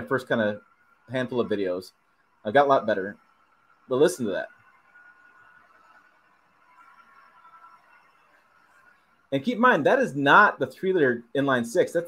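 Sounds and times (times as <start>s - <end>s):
faint diesel truck engine climbing: 0.0s - 11.5s.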